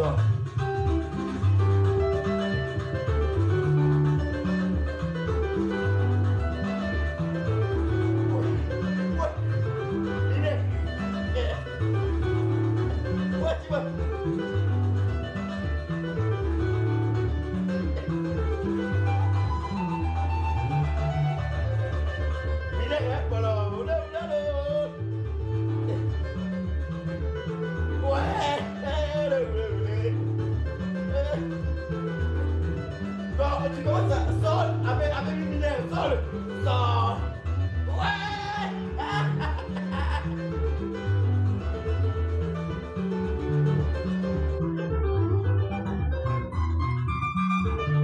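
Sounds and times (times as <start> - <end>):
electric bass line: 0.0 - 48.0
electric guitar melody: 0.0 - 48.0.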